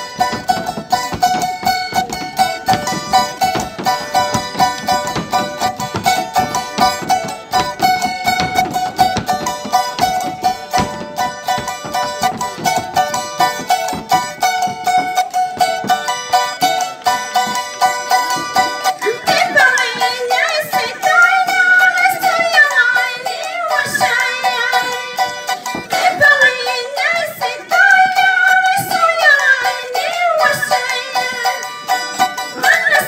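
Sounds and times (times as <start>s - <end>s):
string instrument strummed fast: 0.0s - 33.0s
woman singing high: 19.0s - 25.1s, 25.9s - 31.7s, 32.6s - 33.0s.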